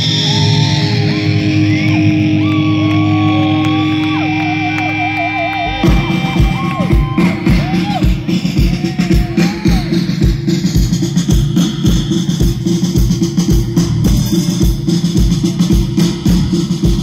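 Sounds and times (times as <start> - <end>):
electric guitar bending notes: 0.0 - 8.3
kick drum beat: 5.7 - 17.0.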